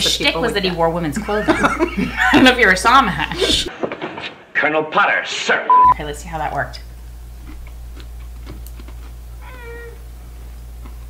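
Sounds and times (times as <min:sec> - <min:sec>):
low electrical hum: 0:00.0 - 0:03.7, 0:05.8 - 0:11.0
cat meowing: 0:09.4 - 0:10.0.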